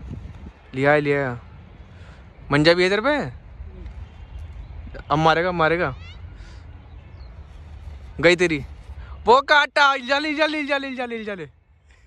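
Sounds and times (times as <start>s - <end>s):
wind rumble on microphone: 0.0s - 2.6s.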